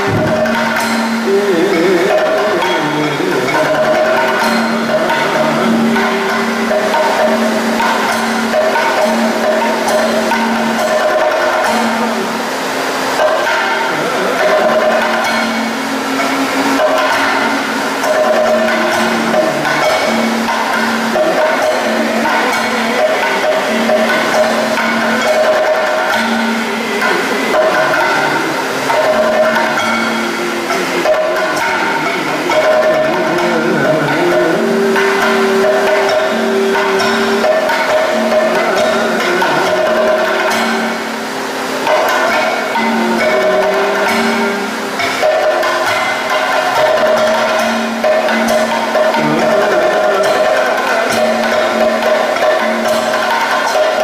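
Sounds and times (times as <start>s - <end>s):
drum beaten with a stick: 0.0s - 54.0s
held ringing or sung tones: 0.0s - 54.0s.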